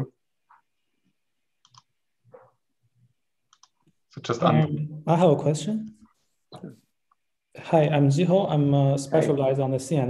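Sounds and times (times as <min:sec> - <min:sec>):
faint scattered clicks: 0:01.6 - 0:01.9, 0:03.5 - 0:04.0.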